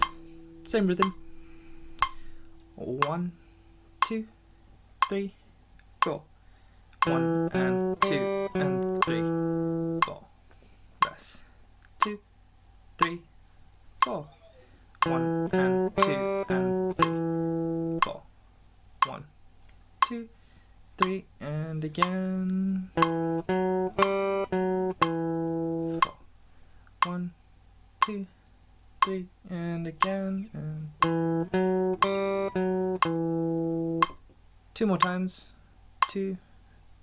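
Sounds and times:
guitar note ringing: 0:00.0 - 0:04.1, 0:07.0 - 0:10.2, 0:14.0 - 0:18.2, 0:23.0 - 0:26.2, 0:31.0 - 0:34.2.

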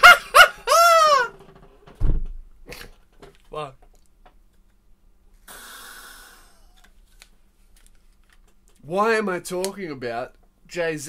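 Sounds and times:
breath through inhaler: 0:05.4 - 0:06.9.

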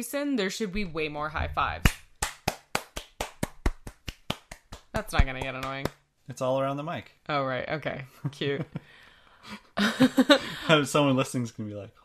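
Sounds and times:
hand slaps: 0:01.8 - 0:06.0.

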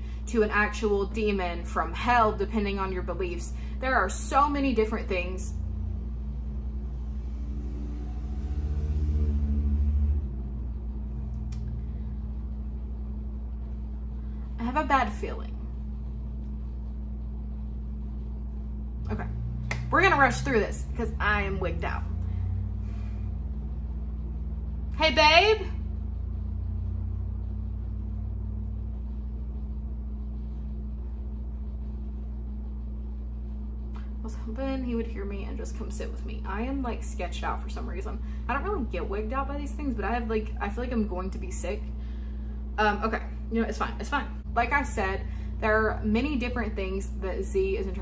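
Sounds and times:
low mechanical rumble: 0:00.0 - 0:48.0
steady hum: 0:00.0 - 0:48.0.

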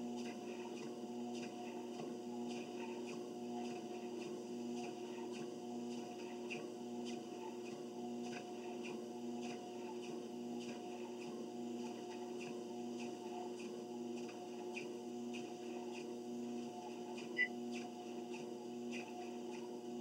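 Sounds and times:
treadmill motor hum: 0:00.0 - 0:20.0.

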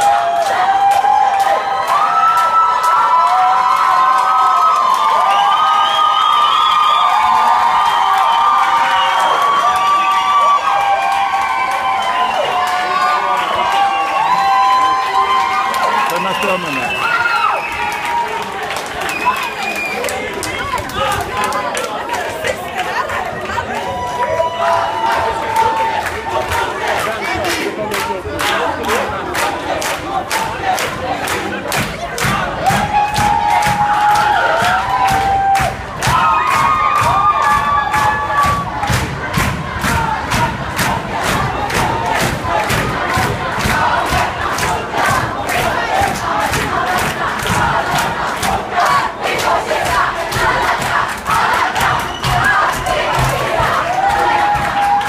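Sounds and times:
crowd shouting and chanting: 0:00.0 - 0:55.0
steady drum beat: 0:31.8 - 0:54.9.

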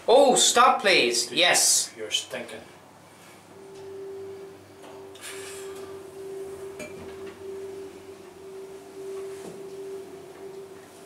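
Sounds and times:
elevator hum: 0:02.8 - 0:11.0.

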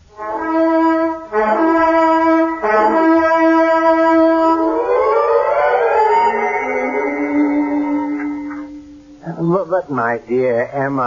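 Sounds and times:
held brass note: 0:00.1 - 0:09.6
climbing glide of pitches: 0:04.0 - 0:09.3.

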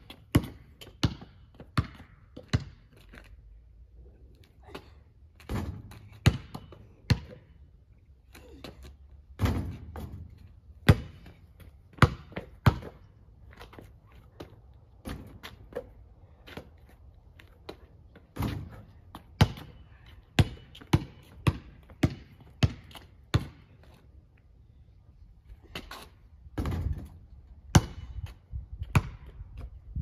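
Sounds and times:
basketball bouncing on driveway: 0:00.0 - 0:03.0, 0:05.4 - 0:07.6, 0:09.4 - 0:16.7, 0:17.6 - 0:23.8, 0:26.6 - 0:29.7
basketball hitting hoop: 0:05.5 - 0:07.3, 0:09.4 - 0:11.3, 0:18.4 - 0:18.8, 0:26.6 - 0:28.1.

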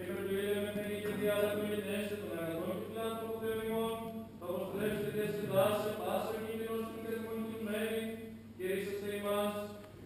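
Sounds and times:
voices chanting in a church: 0:00.3 - 0:09.8.

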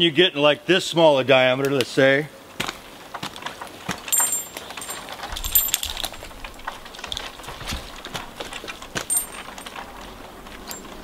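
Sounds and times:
climbing hardware clinking: 0:04.0 - 0:11.0.

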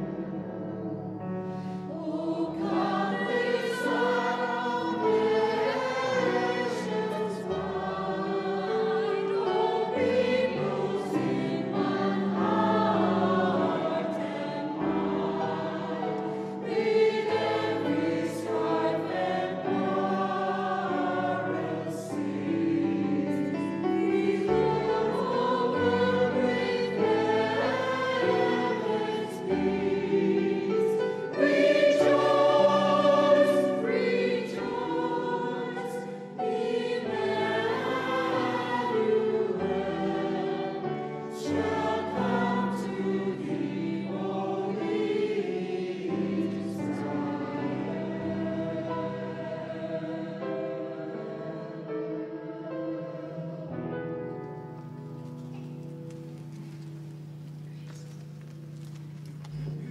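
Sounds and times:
mixed choir singing a carol: 0:00.0 - 0:57.4.

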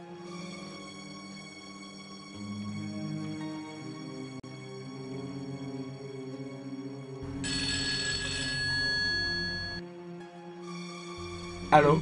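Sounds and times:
low background music: 0:00.0 - 0:12.0
electronic telephone ring: 0:07.4 - 0:09.8.

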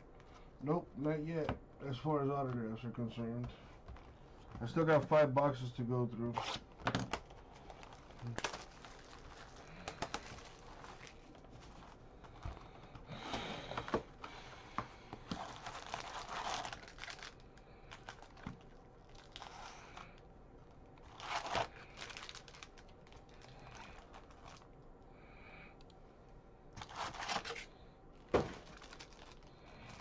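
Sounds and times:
foil wrappers crinkling: 0:06.4 - 0:20.2, 0:21.0 - 0:24.8, 0:26.8 - 0:30.0.

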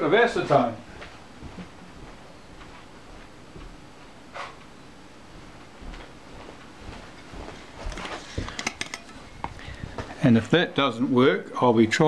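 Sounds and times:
handling noise: 0:05.6 - 0:10.2.

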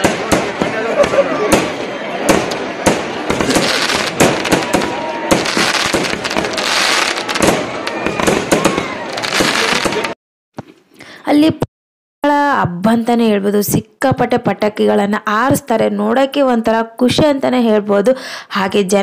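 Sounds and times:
fireworks bangs and crackles: 0:00.0 - 0:10.2
people's voices: 0:00.0 - 0:10.2.

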